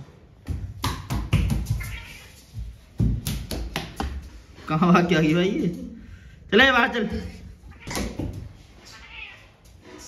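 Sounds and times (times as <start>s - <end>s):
cat meowing: 1.8s - 2.4s, 7.7s - 8.1s, 8.9s - 9.5s.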